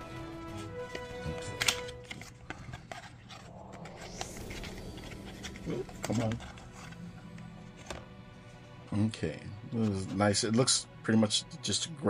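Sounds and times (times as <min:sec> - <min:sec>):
background music tone: 0:03.3 - 0:11.0.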